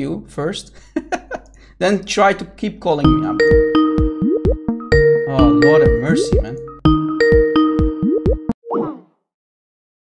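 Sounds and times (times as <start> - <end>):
electronic ringtone: 3.1 - 8.6.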